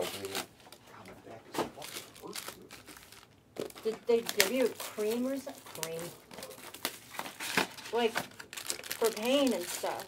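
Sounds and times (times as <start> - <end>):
foil wrappers crinkling: 0.0 - 0.5, 1.8 - 10.0.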